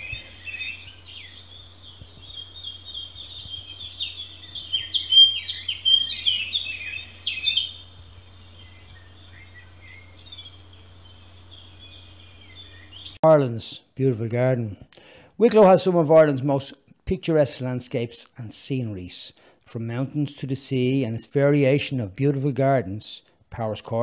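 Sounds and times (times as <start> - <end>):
birds chirping: 0.0 - 13.3
steady low hum: 0.0 - 15.4.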